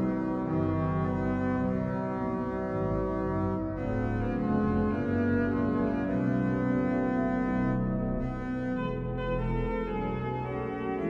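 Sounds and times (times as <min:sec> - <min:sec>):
pipe organ chords: 0:00.0 - 0:11.0.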